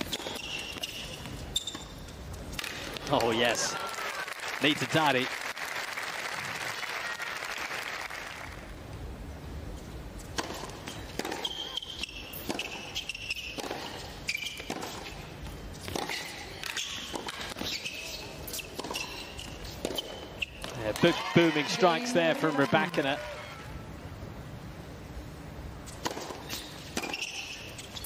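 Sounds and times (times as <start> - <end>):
applause: 3.7 - 8.6
tennis ball bouncing and struck: 10.3 - 15.2, 15.8 - 21.2, 25.9 - 27.8.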